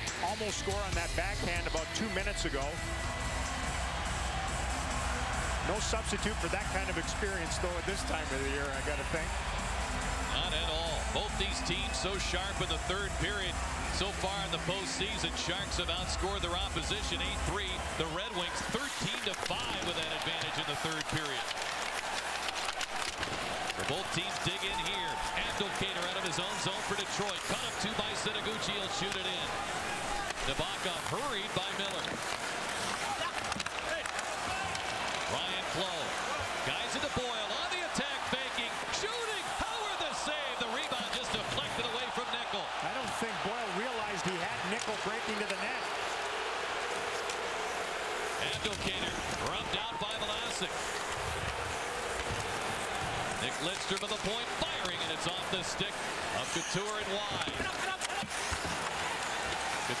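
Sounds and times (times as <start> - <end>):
arena crowd noise: 0.0 - 60.0
puck and sticks thudding on ice: 18.6 - 28.1, 30.0 - 36.6, 48.5 - 55.4, 57.0 - 59.8.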